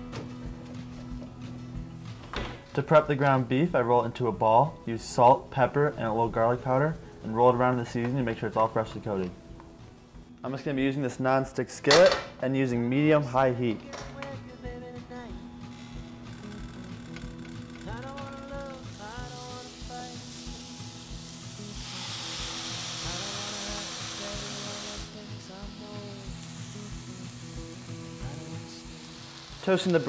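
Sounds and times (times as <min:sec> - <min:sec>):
background music with steady beat: 0:00.0 - 0:30.0
meat patties sizzling in skillet: 0:18.0 - 0:30.0.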